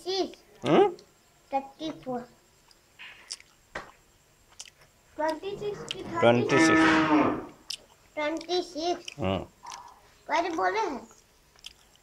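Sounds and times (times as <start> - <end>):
girl speaking: 0.0 - 0.4, 1.5 - 2.4, 5.2 - 6.6, 8.2 - 11.2.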